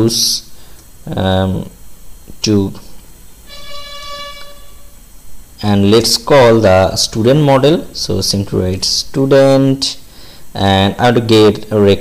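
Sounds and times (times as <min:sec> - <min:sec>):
steady horn tone: 0:03.3 - 0:05.6.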